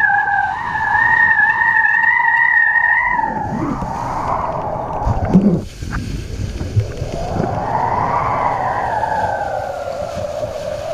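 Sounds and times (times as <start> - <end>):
wind on microphone: 0.0 - 10.9
water hissing under board: 3.2 - 10.9.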